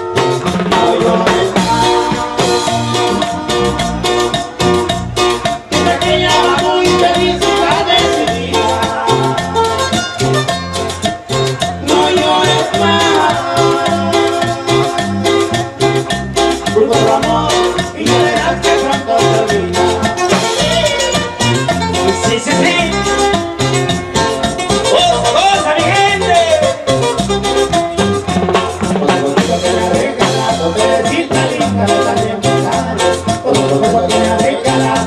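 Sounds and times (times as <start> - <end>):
live band playing dance music: 0.0 - 35.0.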